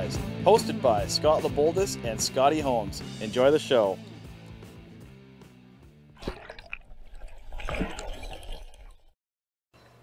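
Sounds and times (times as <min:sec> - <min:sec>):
music: 0:00.0 - 0:06.2
river water splashing and gurgling: 0:06.2 - 0:09.1.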